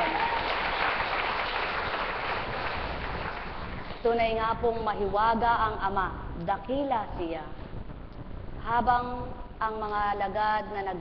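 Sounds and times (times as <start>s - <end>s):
audience applauding: 0.0s - 3.9s.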